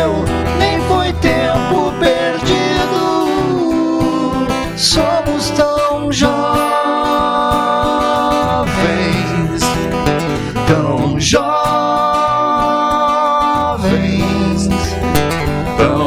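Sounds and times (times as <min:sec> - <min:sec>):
acoustic guitar: 0:00.0 - 0:16.0
men singing a slow ballad: 0:00.0 - 0:16.0.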